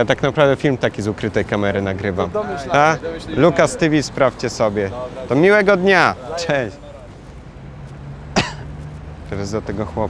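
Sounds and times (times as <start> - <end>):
street traffic drone: 0.0 - 10.0
sharp cough: 8.3 - 8.7.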